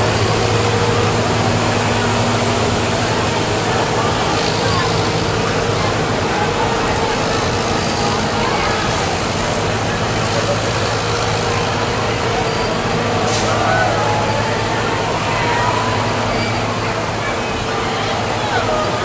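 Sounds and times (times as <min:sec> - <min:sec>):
crowd talking: 0:00.0 - 0:19.0
distant raised voices: 0:00.0 - 0:19.0
truck engine droning: 0:00.0 - 0:19.0.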